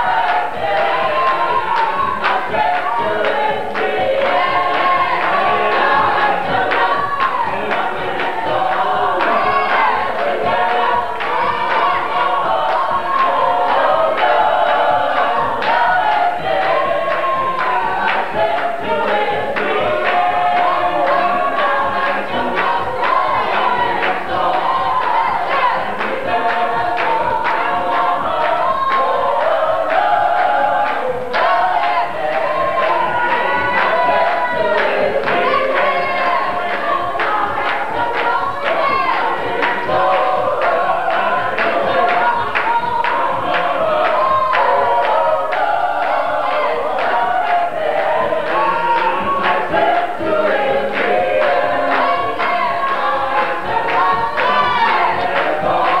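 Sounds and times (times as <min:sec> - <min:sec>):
congregation singing gospel song: 0:00.0 - 0:56.0
hand clapping: 0:00.0 - 0:56.0.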